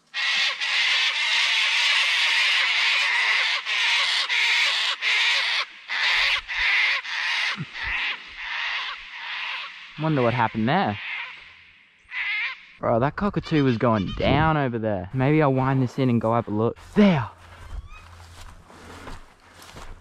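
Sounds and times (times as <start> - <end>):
cockatoos screeching: 0.0 - 14.5.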